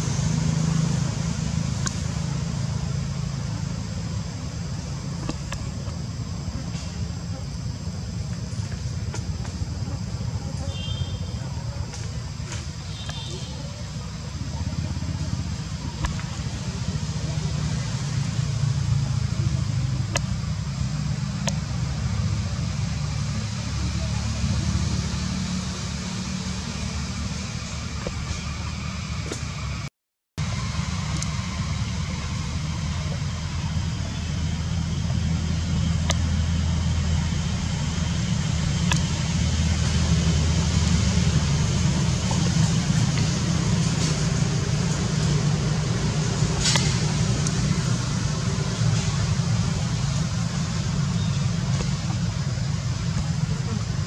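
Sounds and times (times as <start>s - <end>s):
steady hiss: 0.0s - 29.8s.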